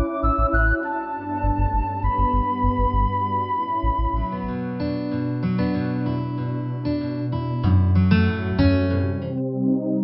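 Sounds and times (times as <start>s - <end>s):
plucked acoustic guitar music: 3.8s - 9.4s.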